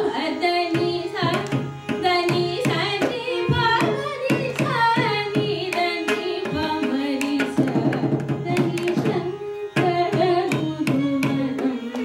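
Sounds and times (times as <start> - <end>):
violin: 0.0 - 12.0.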